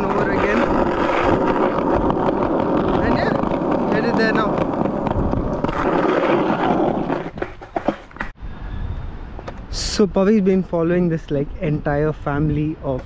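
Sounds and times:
skateboard wheels rolling on asphalt: 0.0s - 8.4s
wind noise on microphone: 0.0s - 13.0s.

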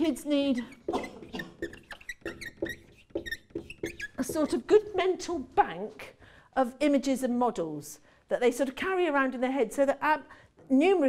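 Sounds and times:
marker squeaking on whiteboard: 0.0s - 5.2s.

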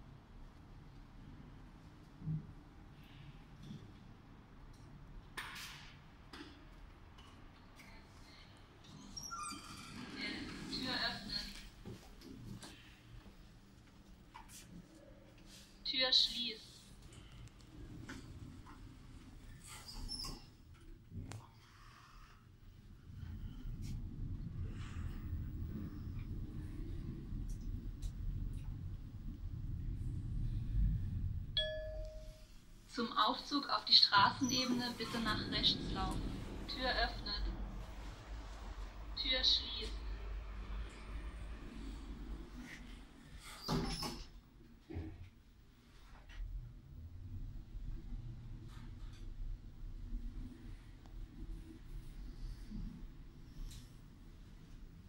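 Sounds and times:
brief high squeak: 9.0s - 10.0s
lift running rumble: 17.1s - 19.8s, 22.6s - 43.6s, 46.0s - 55.0s
elevator doors sliding closed: 17.2s - 20.7s, 40.0s - 44.4s.

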